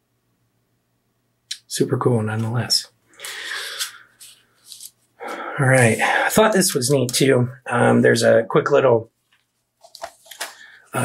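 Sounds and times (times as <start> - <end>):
book pages rustling: 3.7 - 5.1, 9.2 - 10.8.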